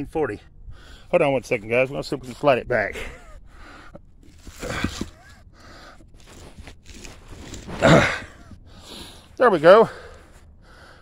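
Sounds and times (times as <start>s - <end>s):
man straining: 3.2s - 9.2s
stone headstone sliding: 4.2s - 8.6s
hard breath of effort: 7.6s - 9.3s, 9.9s - 11.0s.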